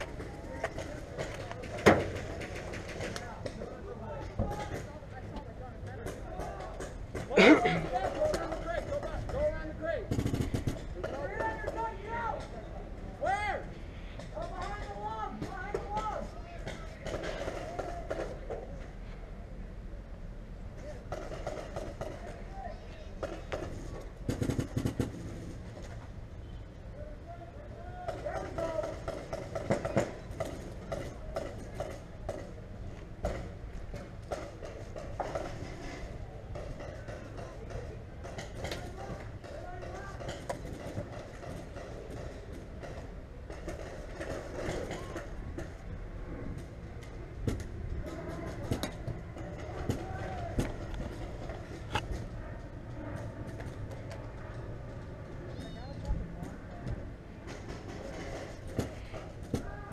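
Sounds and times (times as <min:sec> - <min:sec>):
distant players shouting: 0:48.0 - 0:51.3.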